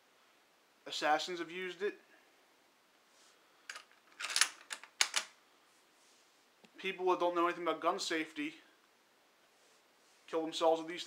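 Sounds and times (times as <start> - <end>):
rifle bolt metallic clatter: 3.7 - 5.3.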